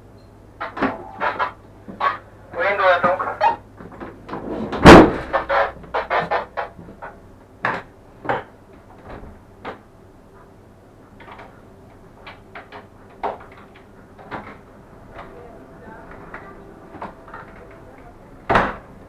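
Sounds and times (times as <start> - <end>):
low steady hum: 0.0 - 19.0
knocks and clatters in train cab: 0.6 - 9.9, 11.1 - 19.0
loud bang: 4.4 - 5.7.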